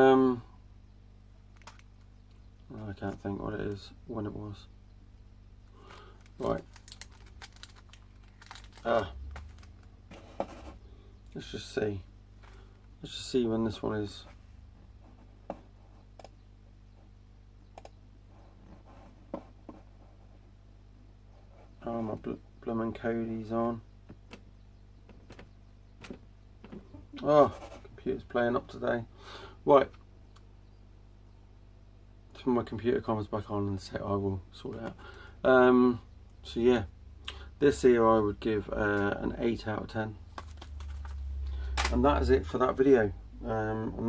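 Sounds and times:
low steady hum: 0.0 - 44.0
plastic case clicks and crinkles: 1.6 - 2.0, 5.9 - 9.9, 40.3 - 41.2, 41.8 - 42.0.

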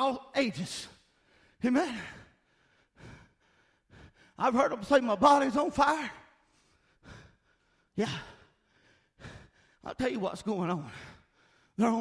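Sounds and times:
man breathing: 0.9 - 4.6, 6.2 - 9.9, 10.7 - 11.8.

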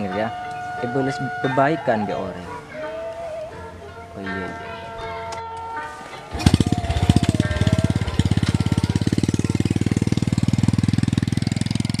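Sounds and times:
motorcycle engine starting and running: 6.2 - 12.0.

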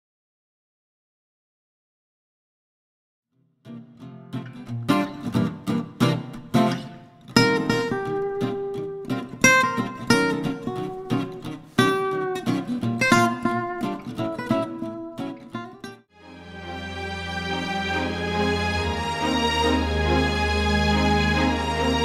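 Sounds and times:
acoustic guitar strummed and picked: 3.6 - 16.6.

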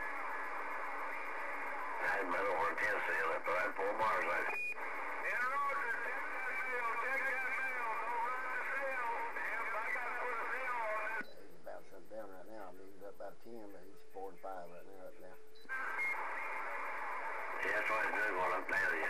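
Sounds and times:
radio static: 0.0 - 19.0.

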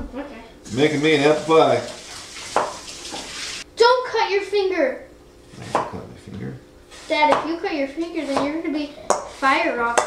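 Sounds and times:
knife knocking on cutting board: 2.6 - 2.8.

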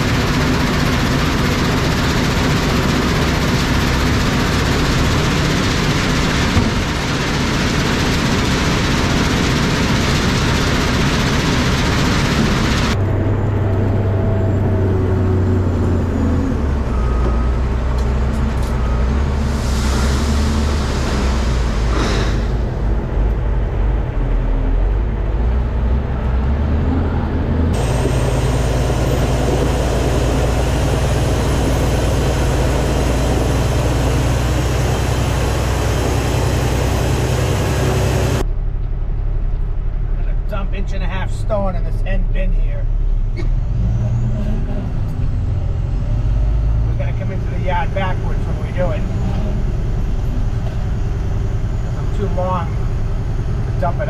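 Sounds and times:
diesel truck engine running: 0.0 - 54.0.

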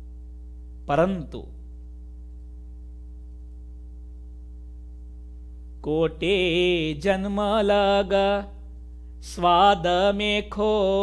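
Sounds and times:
electrical hum: 0.0 - 11.0
man chanting: 0.9 - 1.6, 5.8 - 8.6, 9.2 - 11.0.

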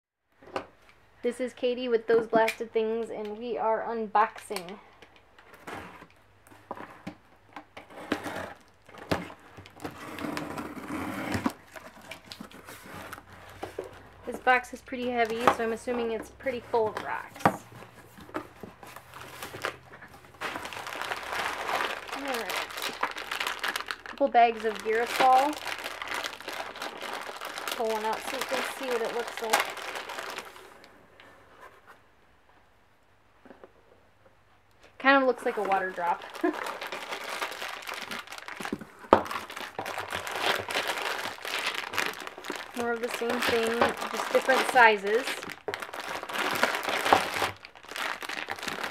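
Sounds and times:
tape and plastic tearing: 5.4 - 30.8, 35.5 - 48.9
packing paper rustling: 7.8 - 31.0, 35.3 - 48.9.

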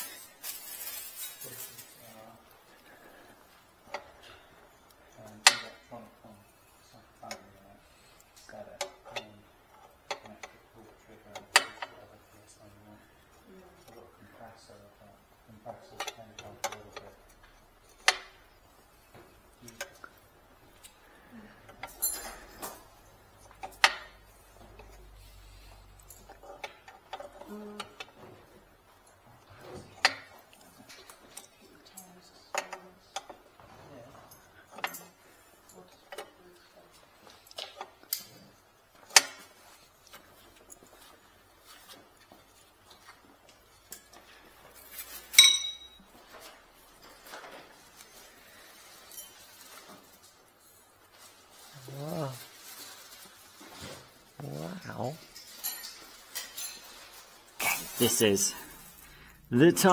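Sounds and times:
metal tool clinking on exhaust: 21.7 - 27.4, 45.0 - 46.2, 55.2 - 57.2.

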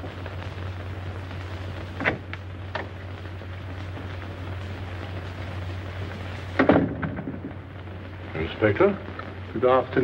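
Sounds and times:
film soundtrack hiss and crackle: 0.0 - 10.0.

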